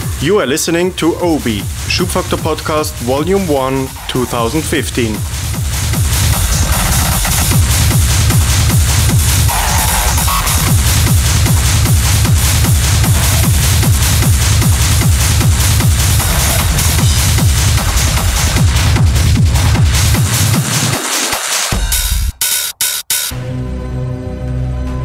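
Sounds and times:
hissy high percussion: 0.0 - 18.6
driving kick drum: 0.0 - 23.2
hard techno music: 0.0 - 23.4
heavy bass: 0.0 - 25.0.

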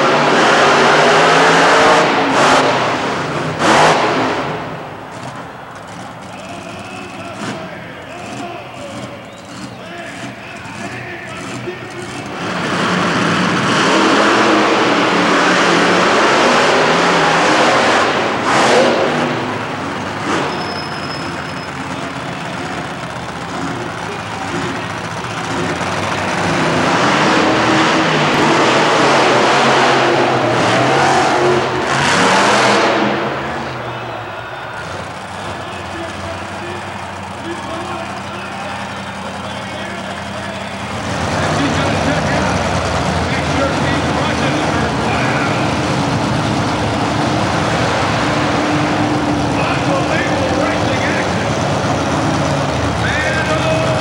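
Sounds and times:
monster truck engines revving: 0.0 - 54.0.

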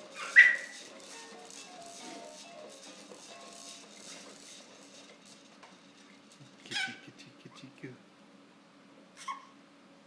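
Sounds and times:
baby squealing: 6.6 - 7.0, 9.2 - 9.6.

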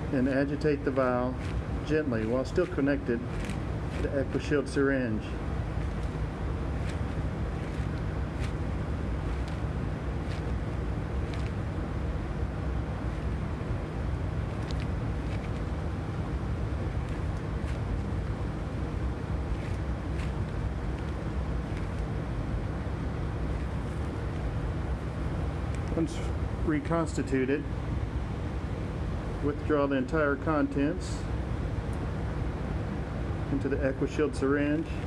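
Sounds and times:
safety cabinet blower humming: 0.0 - 35.0.

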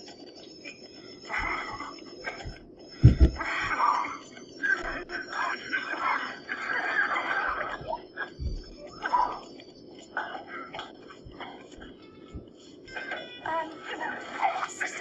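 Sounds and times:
dull low thump: 2.4 - 3.4
whispering voices: 3.4 - 15.0.

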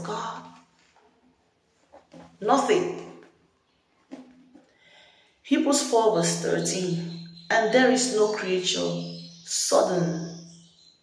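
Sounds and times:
woman speaking: 0.0 - 0.5, 2.4 - 3.2, 5.5 - 10.3.

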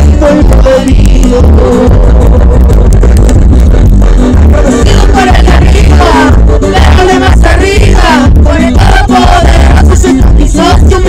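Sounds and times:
loud music with heavy bass: 0.0 - 11.0.

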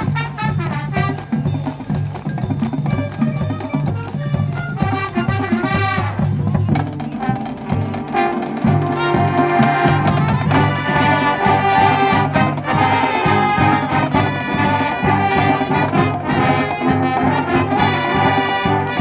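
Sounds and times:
marching band playing: 0.0 - 19.0.

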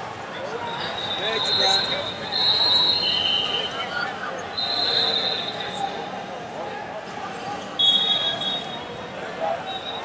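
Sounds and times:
long high referee's whistle: 0.8 - 3.9, 4.6 - 6.0, 7.8 - 8.9.

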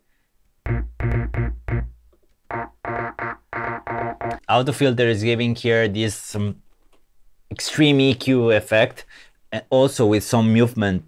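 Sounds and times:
filtered synth stabs: 0.7 - 4.4.

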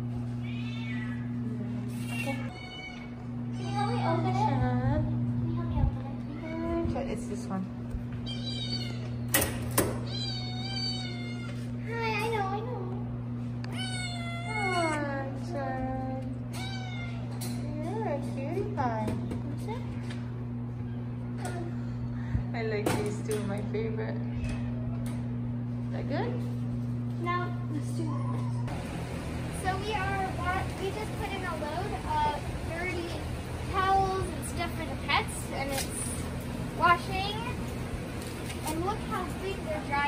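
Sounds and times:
low electrical hum: 0.0 - 40.0
cat meowing: 0.4 - 1.4, 2.1 - 4.1, 8.2 - 9.2, 10.1 - 11.6, 13.7 - 15.0, 16.5 - 17.4
wire cage door clicks: 9.3 - 10.0.

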